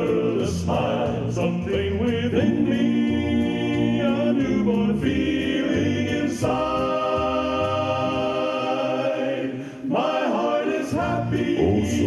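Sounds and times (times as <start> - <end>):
men singing in close harmony: 0.0 - 12.0.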